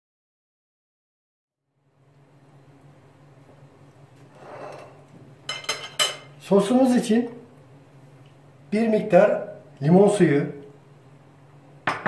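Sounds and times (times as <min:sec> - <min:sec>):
ceramic bowl scraping countertop: 0:04.3 - 0:06.2.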